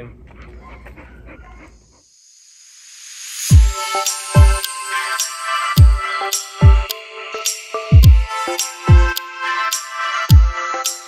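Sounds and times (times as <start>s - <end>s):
hissing noise swell: 2.1s - 10.0s.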